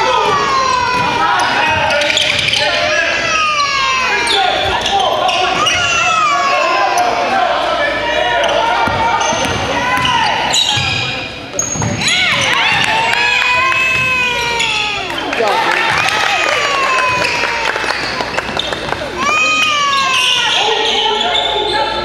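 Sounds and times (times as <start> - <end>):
players calling out: 0.0 - 22.0
sneakers squeaking: 0.0 - 22.0.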